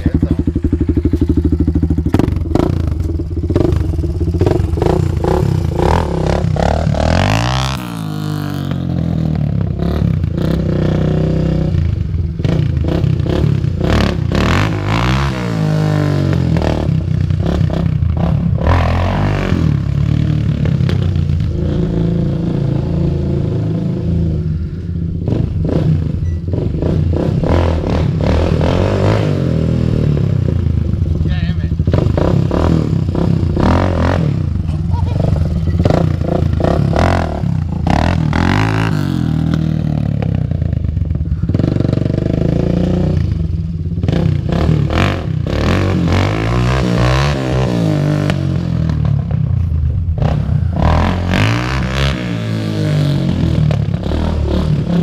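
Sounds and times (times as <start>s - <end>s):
atv engine revving: 0.0s - 55.0s.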